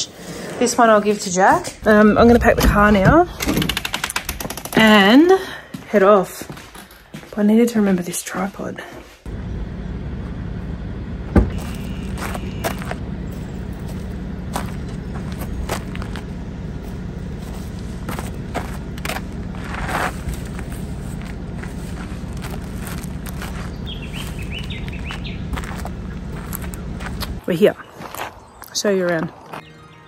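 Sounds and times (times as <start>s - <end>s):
steady low rumble: 1.2s - 3.4s, 9.2s - 27.5s
footsteps: 4.7s - 9.3s, 11.4s - 29.7s
bird chirping: 11.5s - 14.0s, 22.4s - 30.0s.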